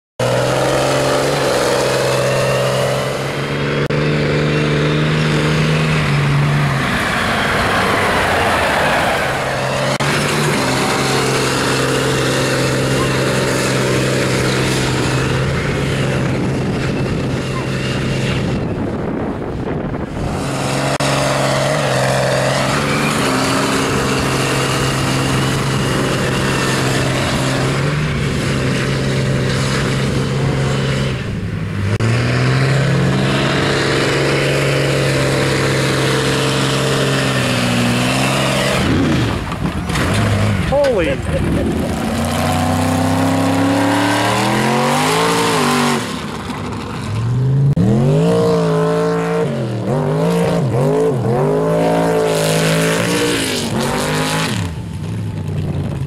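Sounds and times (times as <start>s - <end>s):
truck engine revving high: 0.2s - 56.0s
tyres churning through mud: 0.2s - 56.0s.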